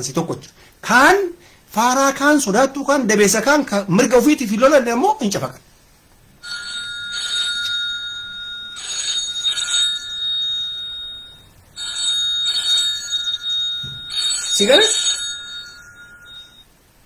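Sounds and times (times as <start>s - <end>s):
phone ringtone ringing: 6.4s - 17.0s.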